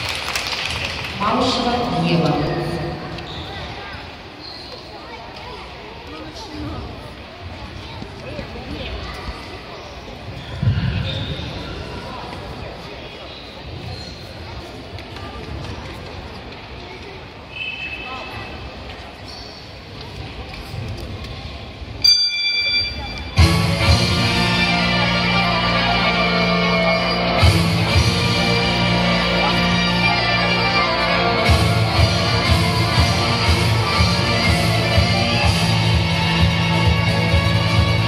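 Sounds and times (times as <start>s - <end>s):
indistinct voices in sports hall: 0.0s - 38.0s
bell-like chime over loudspeakers: 22.0s - 23.5s.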